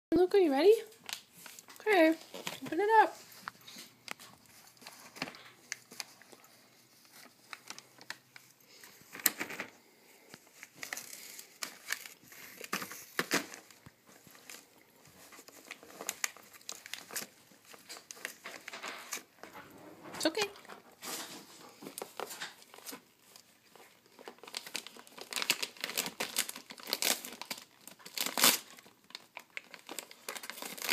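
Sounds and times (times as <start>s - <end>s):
wrapping paper crinkling and tearing: 0.8s - 19.6s, 20.3s - 30.9s.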